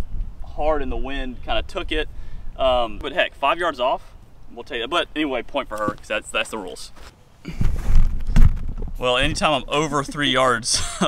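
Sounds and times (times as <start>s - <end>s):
heavy thuds: 7.5s - 9.7s
low rumbling on microphone: 7.5s - 9.8s.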